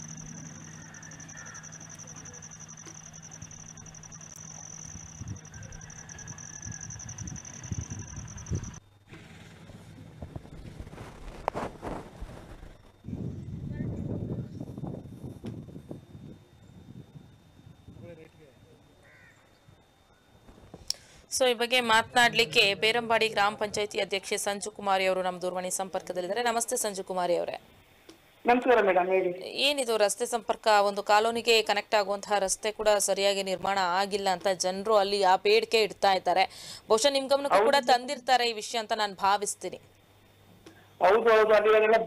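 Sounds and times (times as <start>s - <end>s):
bird calling faintly: 0.0s - 8.8s, 19.0s - 20.3s
low background noise: 15.6s - 42.0s.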